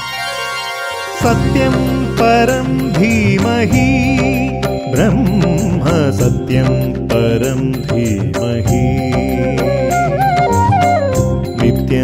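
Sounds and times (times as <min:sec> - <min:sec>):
instrumental accompaniment: 0:00.0 - 0:12.0
percussion: 0:00.0 - 0:12.0
chanted vocal line: 0:01.1 - 0:10.8.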